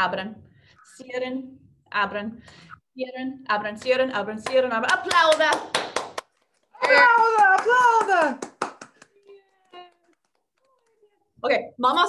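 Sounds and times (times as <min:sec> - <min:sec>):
hand claps: 0:03.8 - 0:11.0.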